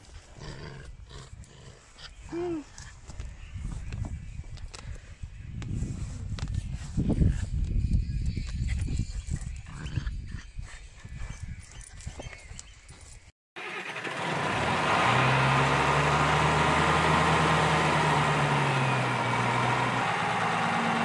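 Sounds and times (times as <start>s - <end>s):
wind buffeting microphone: 2.1s - 13.2s
engine hum: 13.6s - 21.0s.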